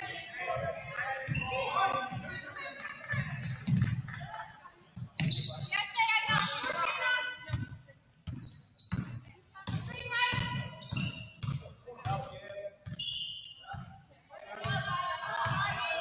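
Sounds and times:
high squeaks: 0:01.0 - 0:04.6, 0:05.2 - 0:06.9, 0:08.3 - 0:09.2, 0:10.4 - 0:13.8.

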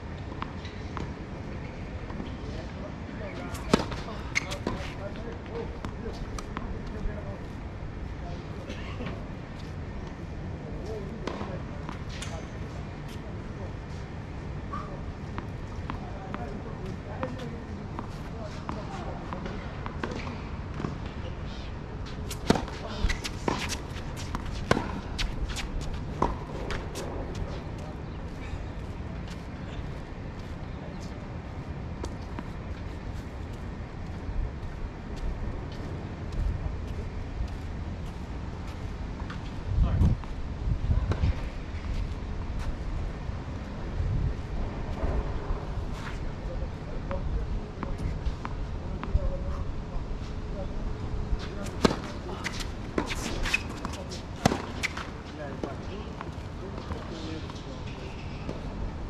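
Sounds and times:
tennis ball struck by rackets: 0:51.7 - 0:55.1.

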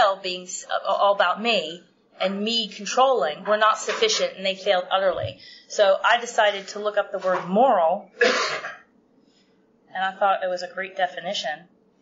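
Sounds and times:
person clearing throat: 0:08.2 - 0:08.9.

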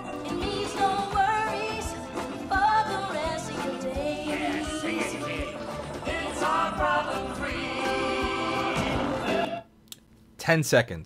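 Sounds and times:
echoey song with singing: 0:00.0 - 0:09.7.

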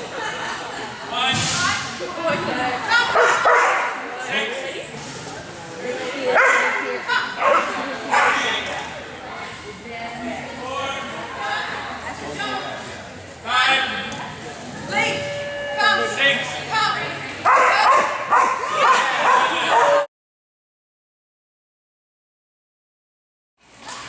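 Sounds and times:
background chatter: 0:00.0 - 0:20.1
dog barking and yipping: 0:17.5 - 0:20.1.

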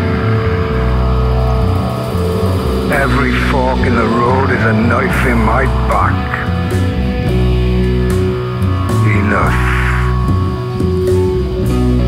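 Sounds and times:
deep held bass notes: 0:00.0 - 0:12.0
sustained guitar tone: 0:00.0 - 0:12.0.

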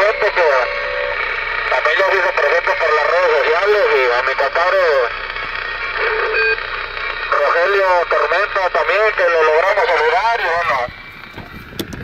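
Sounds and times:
brief radio tone: 0:00.0 - 0:04.2, 0:05.6 - 0:08.3
man's voice over radio: 0:00.0 - 0:11.0
radio static hiss: 0:00.0 - 0:11.7.

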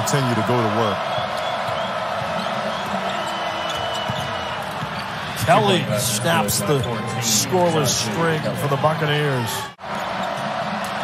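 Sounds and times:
murmur of arena crowd: 0:00.0 - 0:11.0
basketball bouncing on court: 0:01.1 - 0:05.6.

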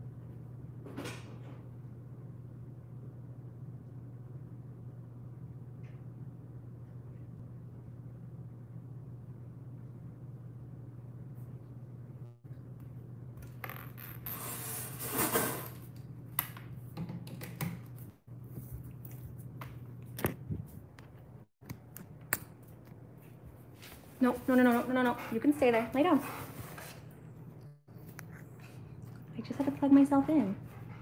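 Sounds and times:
low room hum: 0:00.0 - 0:31.0.

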